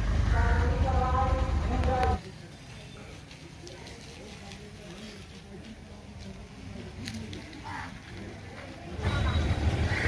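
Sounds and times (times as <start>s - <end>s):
faint street voices: 0.0s - 10.0s
vehicle engine rumble: 0.0s - 10.0s.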